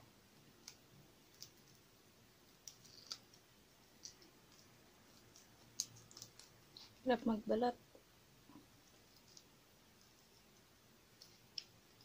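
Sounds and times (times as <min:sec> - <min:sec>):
shrimp shell cracking: 0:02.6 - 0:03.4.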